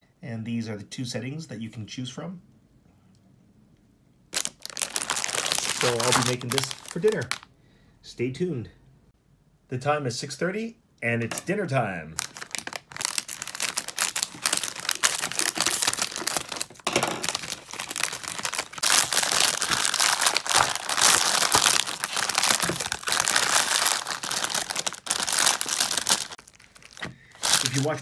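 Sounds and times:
plastic bag crinkling: 0:04.3 - 0:07.5, 0:12.2 - 0:28.0.

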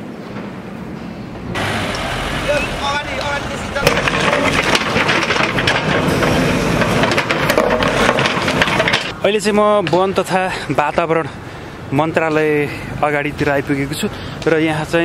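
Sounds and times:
diesel engine running: 0:01.5 - 0:09.1
bucket scraping through rubble: 0:03.4 - 0:09.1.

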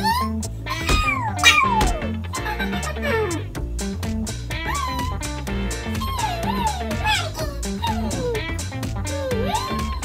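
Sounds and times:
cartoon character high-pitched cry: 0:00.0 - 0:02.0, 0:04.6 - 0:05.2, 0:06.0 - 0:08.4, 0:09.2 - 0:10.0
background music: 0:00.0 - 0:10.0.

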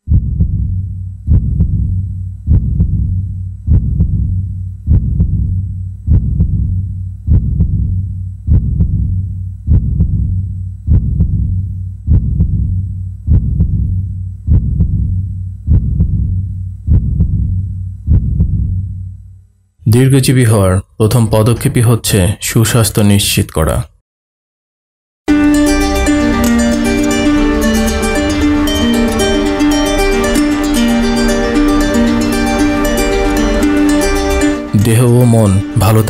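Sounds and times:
heartbeat thumps: 0:00.0 - 0:19.2.

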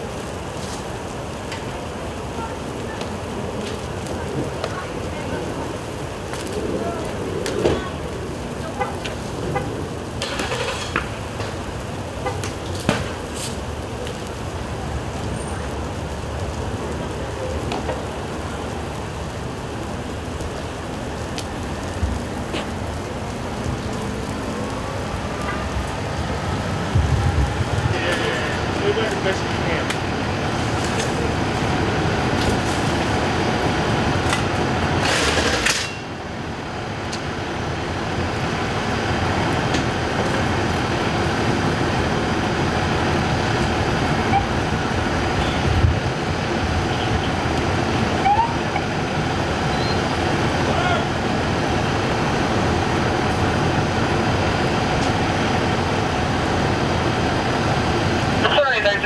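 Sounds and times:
fire crackling: 0:00.0 - 0:59.0
sharp pops from burning car: 0:02.9 - 0:04.8, 0:06.2 - 0:15.4, 0:17.4 - 0:18.7, 0:20.2 - 0:24.4, 0:26.9 - 0:36.2, 0:37.0 - 0:37.3, 0:39.4 - 0:41.0.

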